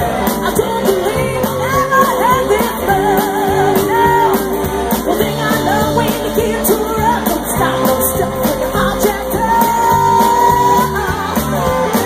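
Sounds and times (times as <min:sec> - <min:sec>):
drums: 0:00.0 - 0:12.0
electric guitars: 0:00.0 - 0:12.0
woman singing: 0:00.0 - 0:12.0.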